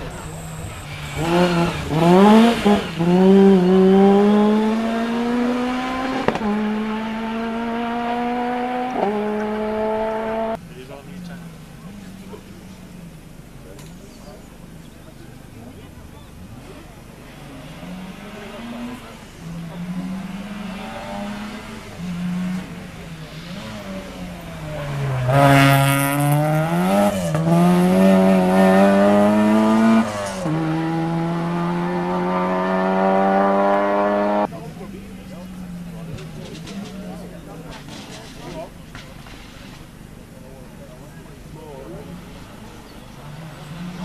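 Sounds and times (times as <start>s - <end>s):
rally car engine passing at speed: 0.0s - 12.8s, 16.4s - 39.8s, 40.8s - 44.0s.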